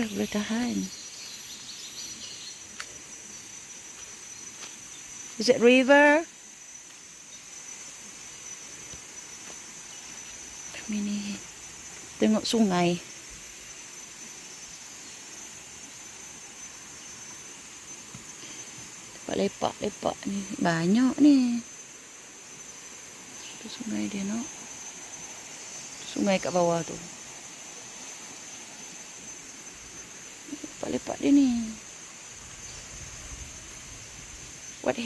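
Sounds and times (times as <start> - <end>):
even forest hiss: 0.0 - 35.0
insect drone: 0.0 - 35.0.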